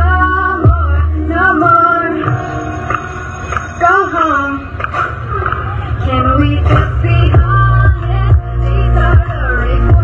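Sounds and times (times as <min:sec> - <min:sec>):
backing track through speakers: 0:00.0 - 0:10.0
girl singing into microphone: 0:05.3 - 0:10.0.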